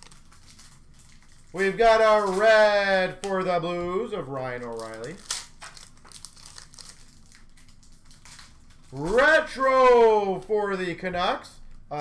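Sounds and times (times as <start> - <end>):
cards rustling: 0.0 - 10.7
foil wrapper crinkling: 0.0 - 11.0.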